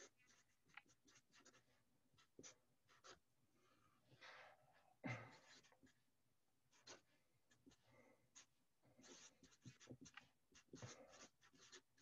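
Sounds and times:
marker scratching on paper: 0.0 - 3.2, 5.4 - 6.0, 6.7 - 12.0.

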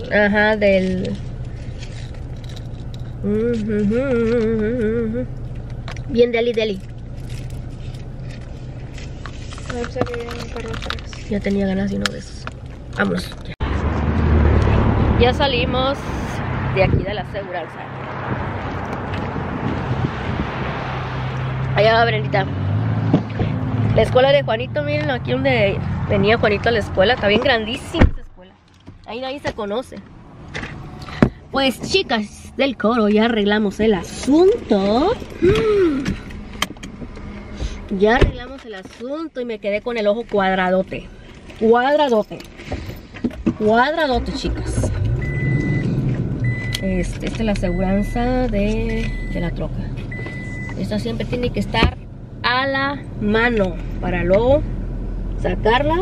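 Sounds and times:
low engine hum: 0.0 - 56.0
wind rumbling on microphone: 13.6 - 21.8.

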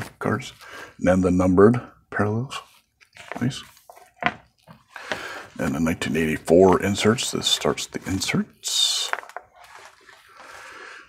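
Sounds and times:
plastic pages rustling: 2.6 - 11.0.

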